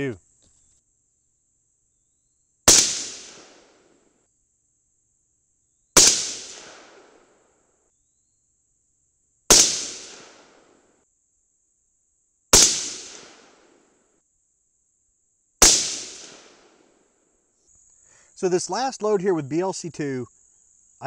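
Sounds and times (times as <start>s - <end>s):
rifle shots echoing: 2.7s - 3.9s, 6.0s - 7.2s, 9.5s - 10.7s, 12.6s - 13.7s, 15.6s - 16.8s.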